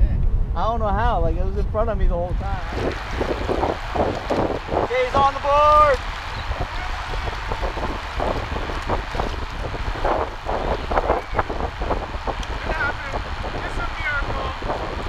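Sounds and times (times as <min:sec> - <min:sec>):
wind buffeting microphone: 0:00.0 - 0:15.0
indistinct voices: 0:02.3 - 0:15.0.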